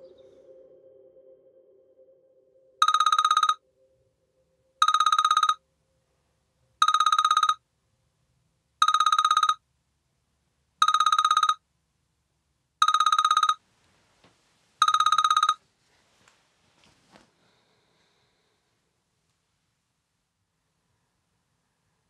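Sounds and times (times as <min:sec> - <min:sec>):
telephone ringing: 0:02.8 - 0:03.6, 0:04.8 - 0:05.6, 0:06.8 - 0:07.6, 0:08.8 - 0:09.6, 0:10.8 - 0:11.6, 0:12.8 - 0:13.6, 0:14.8 - 0:15.6.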